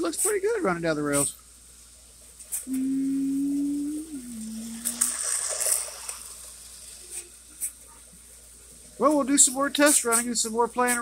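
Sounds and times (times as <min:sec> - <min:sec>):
steady held tone: 0:02.7 - 0:05.2
toy train running on track: 0:04.0 - 0:08.0, 0:08.9 - 0:11.0.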